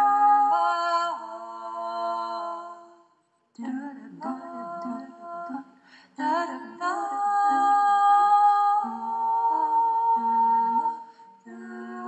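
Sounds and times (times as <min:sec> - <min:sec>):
woman singing wordless held notes: 0:03.6 - 0:05.6.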